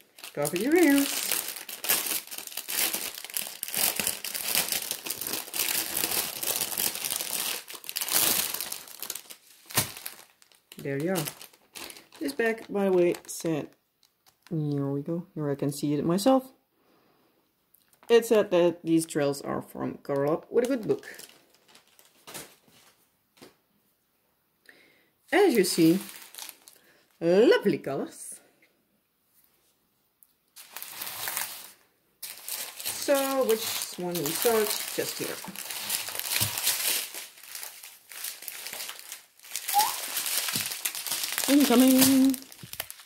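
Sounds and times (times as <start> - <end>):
plastic bags rustling: 0.0 - 13.5, 20.6 - 23.0, 25.4 - 27.1, 30.6 - 43.0.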